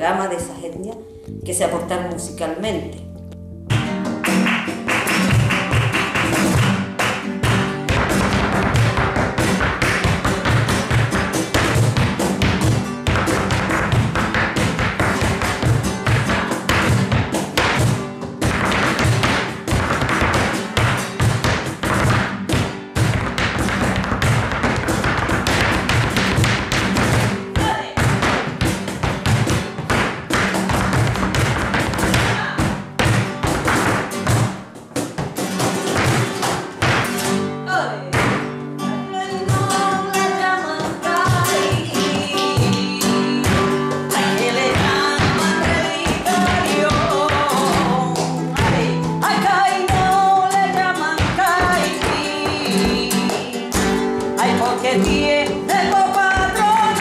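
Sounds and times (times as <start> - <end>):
flamenco music: 0.0 - 57.0
shoes tapping on floor: 3.3 - 37.4, 40.7 - 57.0.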